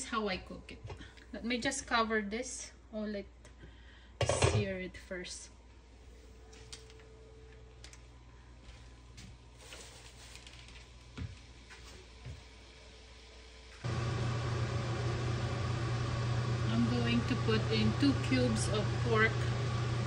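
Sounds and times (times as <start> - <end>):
loud steady low hum: 13.8 - 20.0.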